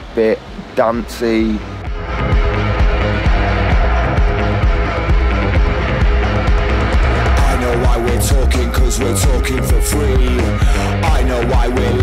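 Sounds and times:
bass guitar: 0:01.6 - 0:12.0.

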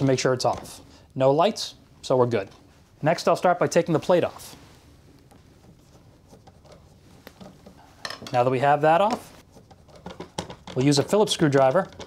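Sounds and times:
screwdriver scraping and ticking: 0:05.6 - 0:07.8, 0:09.4 - 0:12.0.

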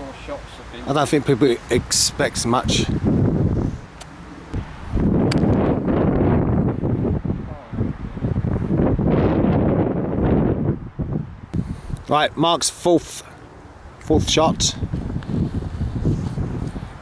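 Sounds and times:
wind buffeting microphone: 0:01.7 - 0:12.1, 0:14.0 - 0:17.0.

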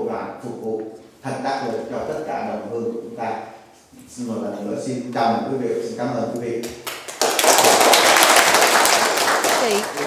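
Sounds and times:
audience applauding: 0:06.8 - 0:10.0.

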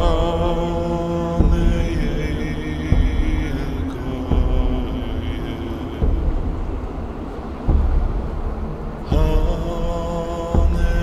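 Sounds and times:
deep low rumbling drone: 0:00.0 - 0:11.0
faint steady hum: 0:00.0 - 0:11.0.

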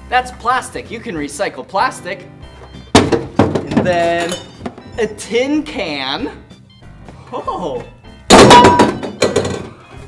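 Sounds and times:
tin can clattering into plastic bin: 0:02.9 - 0:04.8, 0:08.3 - 0:09.8.

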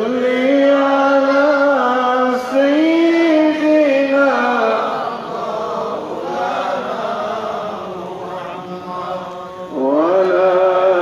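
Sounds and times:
unaccompanied devotional chanting: 0:00.0 - 0:11.0.

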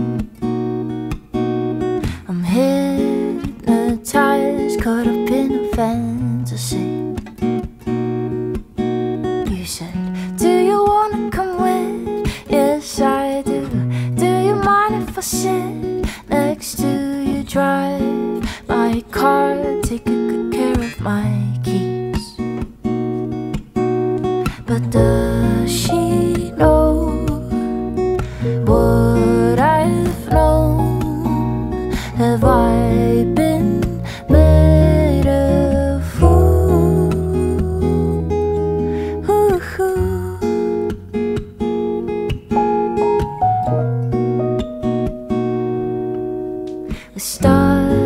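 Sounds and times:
acoustic guitar chords: 0:00.0 - 0:48.0
woman singing: 0:02.0 - 0:07.2, 0:09.4 - 0:22.4, 0:24.5 - 0:40.9, 0:46.9 - 0:48.0
upright double bass: 0:24.9 - 0:38.2.

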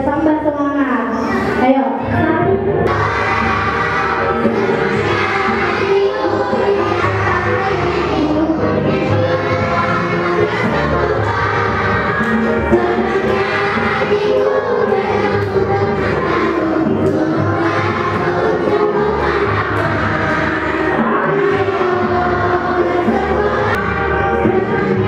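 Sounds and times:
background music with singing: 0:00.0 - 0:25.0.

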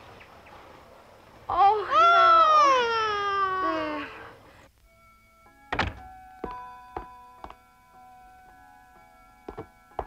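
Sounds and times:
soft film music: 0:04.4 - 0:10.0.

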